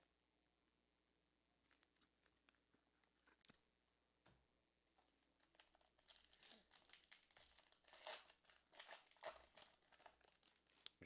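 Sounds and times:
card pack wrapper crinkling: 0:05.4 - 0:11.0.

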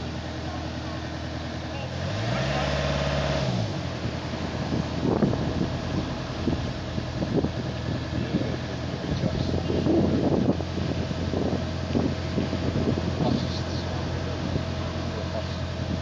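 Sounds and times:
vehicle engine idling and revving: 0:00.0 - 0:16.0
wind buffeting microphone: 0:03.6 - 0:16.0.

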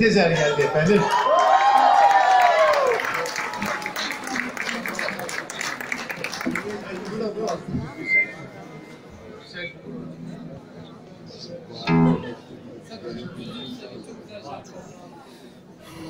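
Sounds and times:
murmur of voices: 0:00.0 - 0:16.0
audience cheering: 0:00.8 - 0:04.3
audience applauding: 0:01.0 - 0:07.6.

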